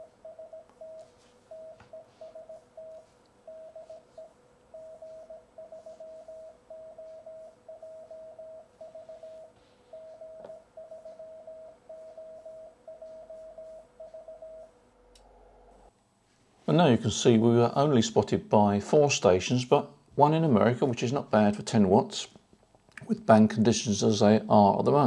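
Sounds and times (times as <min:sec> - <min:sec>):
morse code tone: 0:00.0 - 0:14.8.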